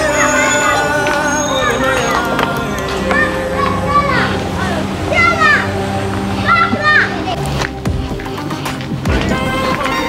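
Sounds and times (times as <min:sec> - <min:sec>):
children shouting: 0:00.0 - 0:07.6
background music: 0:00.0 - 0:10.0.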